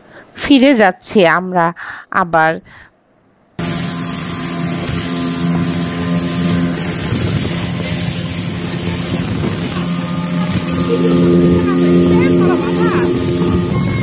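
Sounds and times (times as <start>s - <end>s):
wind: 0.0s - 14.0s
rushing water: 3.6s - 14.0s
speedboat engine running: 3.6s - 14.0s.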